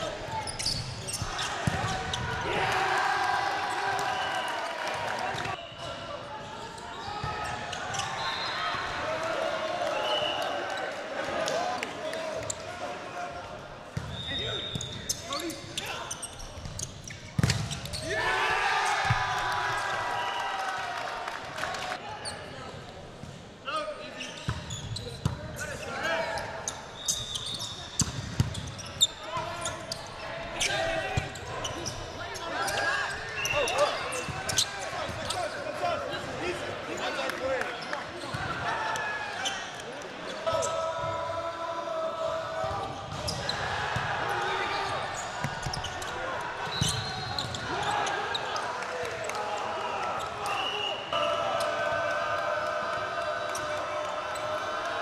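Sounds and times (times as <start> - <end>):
players shouting calls: 0.0 - 16.2, 17.8 - 22.6, 28.6 - 55.0
volleyball slaps: 17.3 - 17.8.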